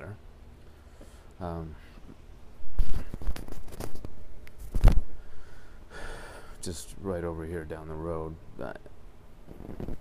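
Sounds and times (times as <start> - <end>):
handling noise on microphone: 2.0 - 5.2, 9.4 - 10.0.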